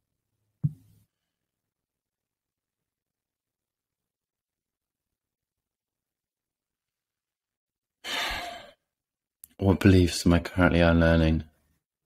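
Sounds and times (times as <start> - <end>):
man sighing: 8.0 - 8.8.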